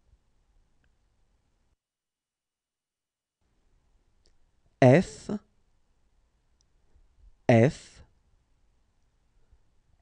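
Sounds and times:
man saying a letter: 4.8s - 5.5s, 7.5s - 8.1s.

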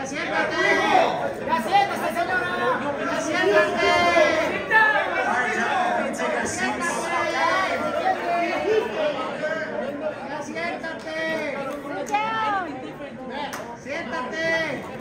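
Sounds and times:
men talking heatedly: 0.0s - 15.0s.

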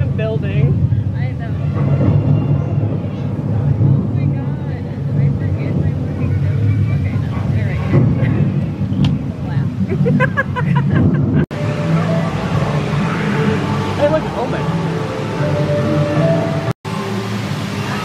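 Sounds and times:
crowd chatter: 0.0s - 10.2s
loud low rumble: 0.0s - 18.0s.

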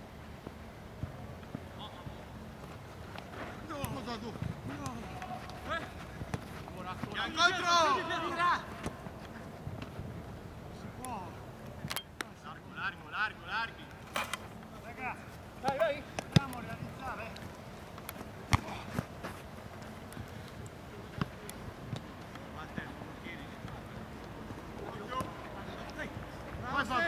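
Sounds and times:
players shouting: 3.7s - 9.1s.

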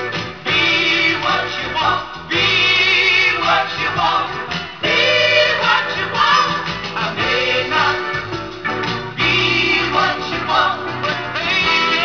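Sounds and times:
soul record playing: 0.0s - 12.0s
singer with backing voices: 0.4s - 8.4s, 9.1s - 12.0s.

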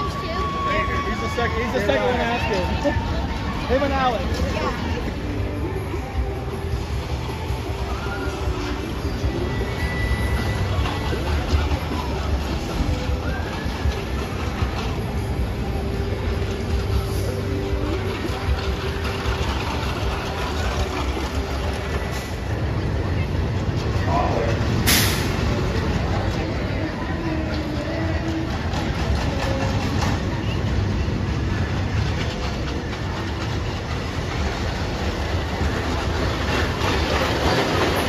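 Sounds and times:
crowd chatter: 0.0s - 38.0s
low rumble of rides: 0.0s - 38.0s.

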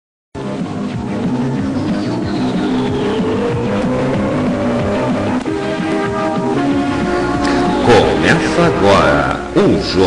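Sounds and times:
engine-like rising tone: 0.4s - 7.1s
theme music with steady beat: 0.4s - 10.0s.

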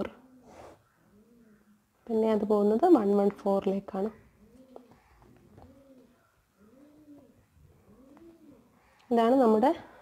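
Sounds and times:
bird cooing: 0.0s - 2.0s, 4.2s - 8.9s.

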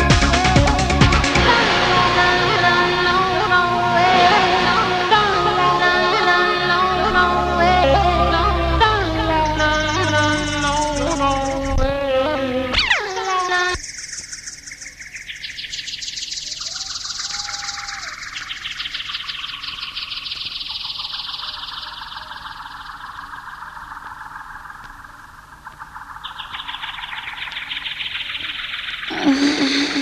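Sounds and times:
buzzing chirping electronic trill: 8.3s - 30.0s.

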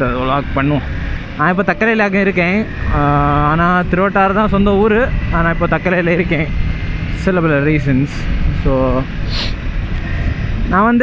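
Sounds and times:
man talking: 0.0s - 6.5s, 7.2s - 9.6s
motorcycle engine drone: 0.0s - 11.0s
wind rushing: 0.0s - 11.0s.

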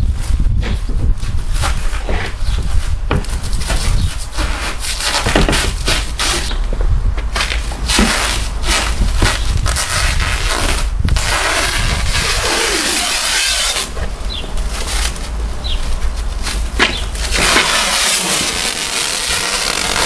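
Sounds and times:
plastic wrap crackling and rustling: 0.7s - 6.7s, 7.3s - 20.0s
plastic wrap rasp: 3.2s - 6.6s, 7.4s - 14.0s, 14.6s - 20.0s.

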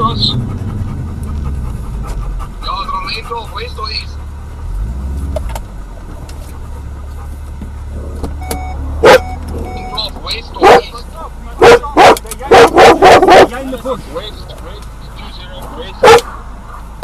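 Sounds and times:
vehicle engine rumbling: 0.0s - 17.0s
dog barking: 9.0s - 9.4s, 10.6s - 11.0s, 11.6s - 13.6s, 16.0s - 16.9s.

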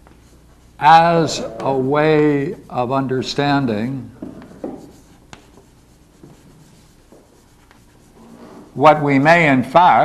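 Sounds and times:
chalk scratching on blackboard: 0.2s - 9.4s.

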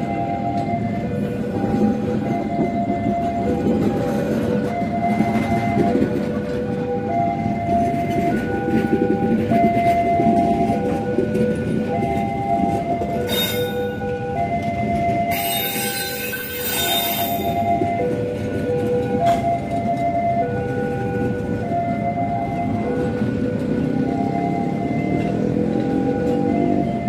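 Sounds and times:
train wheels rumbling on rails: 0.0s - 27.0s.

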